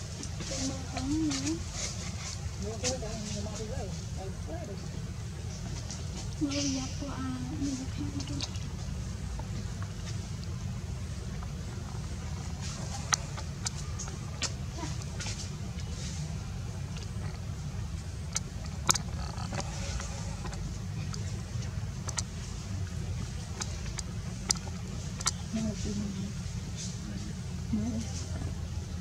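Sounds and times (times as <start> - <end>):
low outdoor rumble: 0.0 - 29.0.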